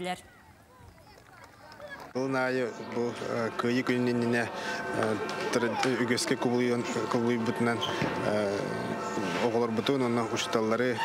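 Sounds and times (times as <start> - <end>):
faint music: 0.5 - 11.0.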